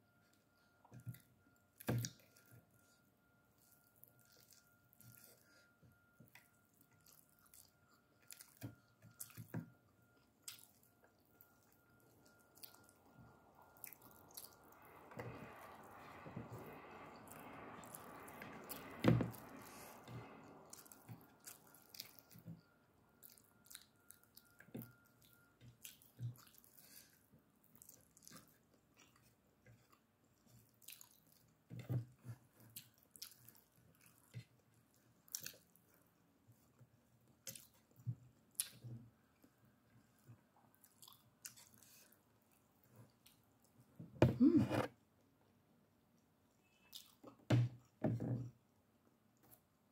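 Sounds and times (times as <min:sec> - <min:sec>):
person chewing food: 0:03.6 - 0:43.8, 0:46.6 - 0:48.0.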